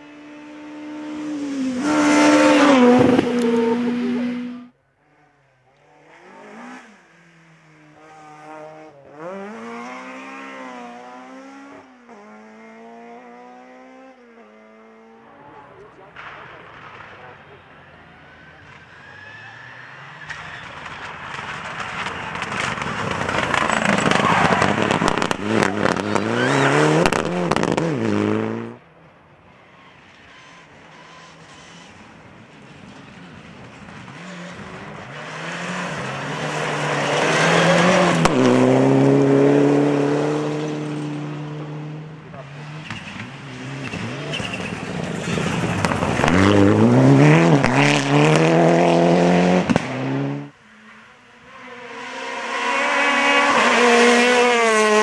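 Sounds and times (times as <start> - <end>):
rally cars revving past: 0.0 - 4.7, 5.8 - 16.3, 22.4 - 28.8, 33.2 - 55.0.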